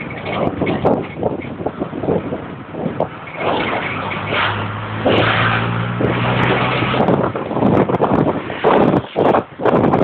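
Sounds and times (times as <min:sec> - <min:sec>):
road and wind noise: 0:00.0 - 0:10.0
vehicle engine hum: 0:00.0 - 0:10.0.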